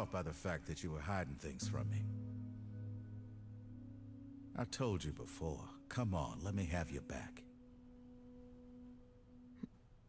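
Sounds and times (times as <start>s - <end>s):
faint steady low tone: 0.0s - 10.0s.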